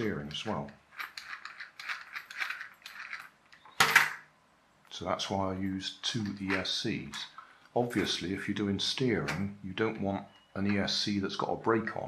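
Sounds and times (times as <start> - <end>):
toy car plastic clicks and rattles: 0.9 - 4.2
plastic clatter on table: 3.7 - 4.2.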